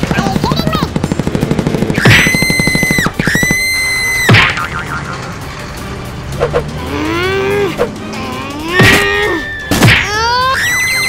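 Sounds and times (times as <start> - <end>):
rapid pulsing zap: 0.0 - 4.6
background music: 1.3 - 11.0.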